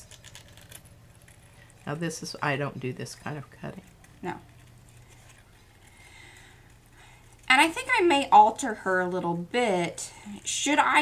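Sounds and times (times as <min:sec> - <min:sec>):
faint low hum: 0:00.0 - 0:11.0.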